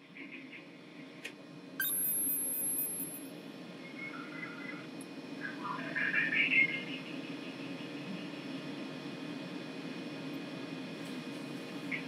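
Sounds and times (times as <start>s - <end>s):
low equipment hum: 0.0s - 12.0s
steady high tone: 1.8s - 3.2s
high-pitched electronic beeps: 1.8s - 3.3s.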